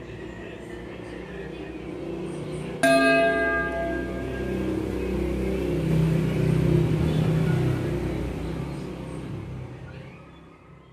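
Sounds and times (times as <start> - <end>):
bell ringing: 2.8 - 5.0.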